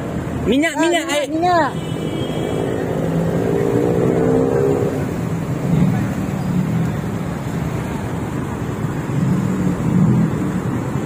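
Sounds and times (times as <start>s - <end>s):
car engines humming: 0.0s - 11.0s.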